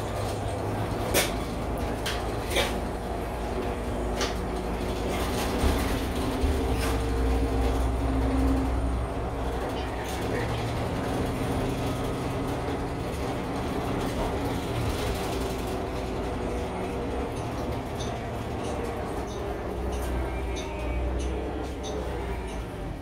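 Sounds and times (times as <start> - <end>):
bus engine drone: 0.0 - 23.0
road rumble: 0.0 - 23.0.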